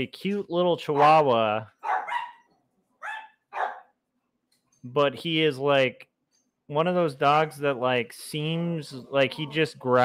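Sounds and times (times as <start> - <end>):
dogs barking: 0.8 - 4.0.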